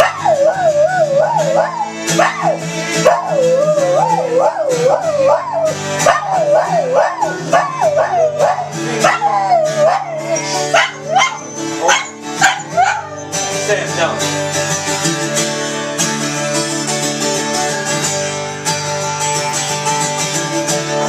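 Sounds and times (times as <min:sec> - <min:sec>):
dog howling: 0:00.0 - 0:13.5
acoustic guitar: 0:00.0 - 0:21.0.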